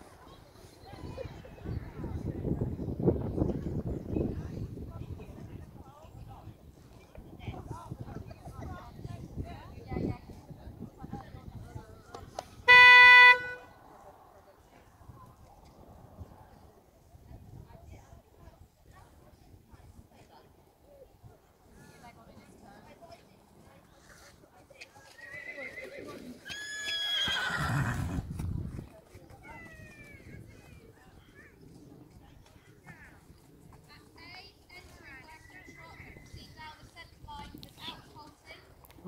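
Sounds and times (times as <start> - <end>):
short horn toot: 12.7 - 13.7
horse whinnying: 25.2 - 28.3.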